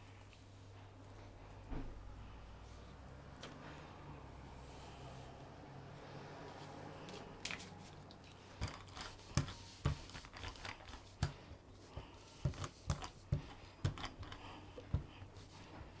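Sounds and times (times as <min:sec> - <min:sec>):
brush scratching on plate: 0:08.6 - 0:15.7
brush tapping plate: 0:08.6 - 0:15.7.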